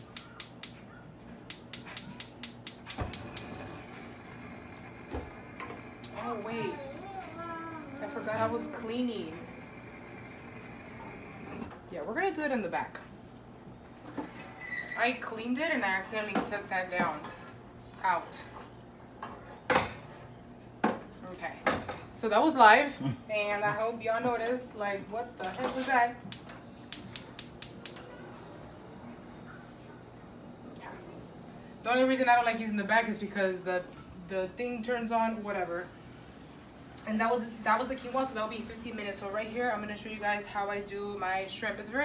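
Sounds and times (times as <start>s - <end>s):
gas igniter clicking: 0.0s - 0.8s, 1.5s - 3.6s, 26.3s - 28.0s.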